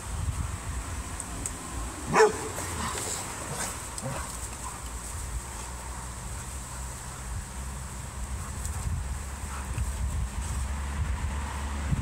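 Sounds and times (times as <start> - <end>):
wind rumble on microphone: 0.0 - 12.0
dogs scuffling on grass: 2.0 - 11.8.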